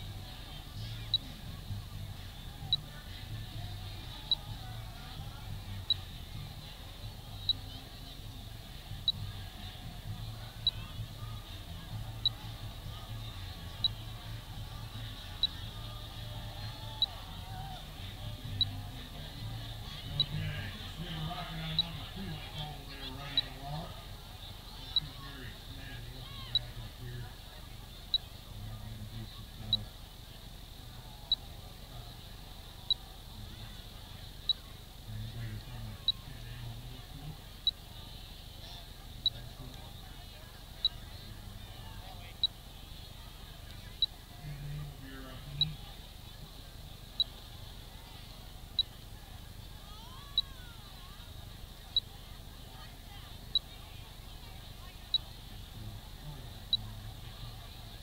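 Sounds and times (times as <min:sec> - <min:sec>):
murmur of distant voices: 0:00.0 - 0:58.0.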